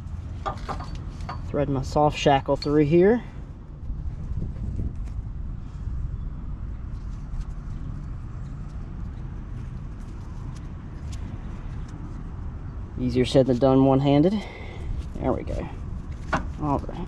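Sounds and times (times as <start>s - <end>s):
rope rustling and clicking: 6.8s - 12.4s, 14.9s - 17.0s.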